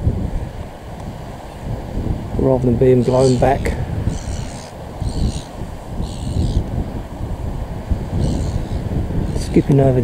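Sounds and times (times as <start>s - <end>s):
strong wind buffeting microphone: 0.0s - 10.0s.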